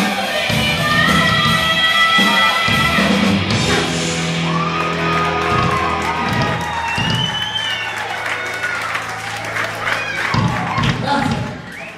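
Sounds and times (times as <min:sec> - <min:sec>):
heavy metal band playing live: 0:00.0 - 0:07.4
crowd whooping and cheering: 0:03.5 - 0:11.9
drum hits: 0:05.4 - 0:07.4.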